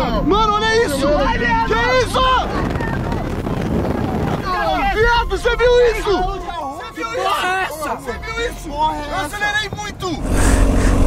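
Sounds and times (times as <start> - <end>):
road noise: 0.0 - 5.6, 8.0 - 11.0
wind rushing over microphone: 0.8 - 6.6, 9.4 - 11.0
engine accelerating hard: 10.2 - 11.0.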